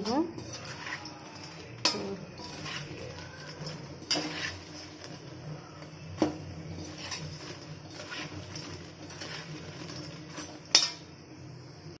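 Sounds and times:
metal spatula clinking on pan: 0.0s - 4.6s, 6.8s - 11.1s
food frying in oil: 0.0s - 12.0s.

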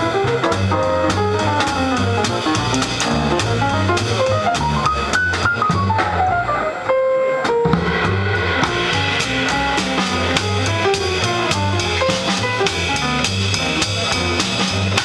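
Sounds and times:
drum cymbals keeping time: 0.0s - 6.0s, 7.5s - 15.0s
piano playing fast lines: 0.0s - 15.0s
steady bass line: 0.0s - 15.0s.

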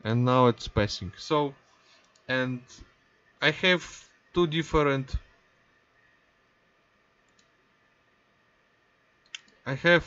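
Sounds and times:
computer mouse click: 2.0s - 2.3s, 7.2s - 7.6s, 9.2s - 9.6s.

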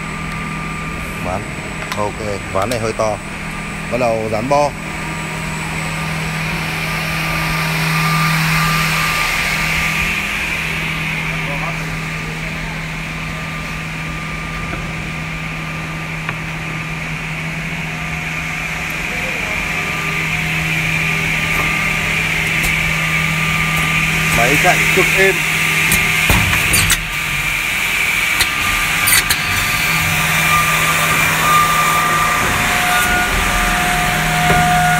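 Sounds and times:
cutter whine: 0.0s - 34.9s
machine motor hum: 0.0s - 34.9s.

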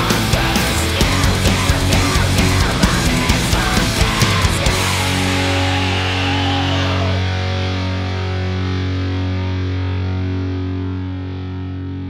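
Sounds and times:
distorted electric guitar chord ringing: 0.0s - 12.0s.

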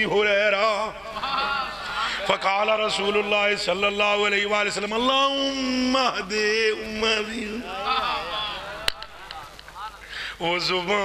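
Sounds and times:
man chanting religious recitation: 0.0s - 1.1s, 2.0s - 8.8s, 9.8s - 11.0s.

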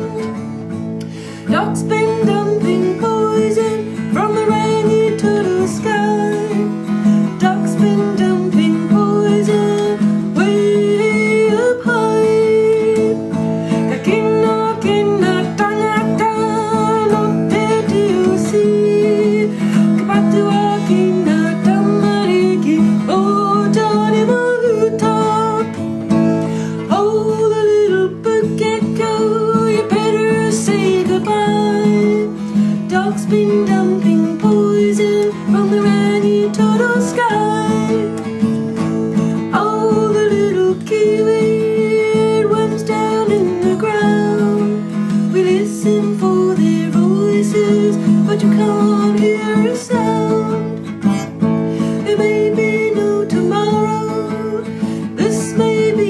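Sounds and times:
strummed acoustic guitar chords: 0.0s - 56.0s.

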